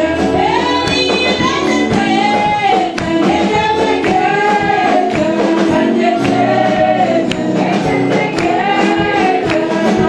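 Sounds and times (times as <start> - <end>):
group singing gospel: 0.0 - 10.0
musical accompaniment: 0.0 - 10.0.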